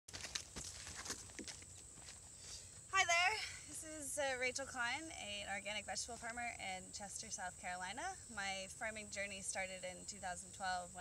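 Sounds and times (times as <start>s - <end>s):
footsteps on soil: 0.1s - 2.9s.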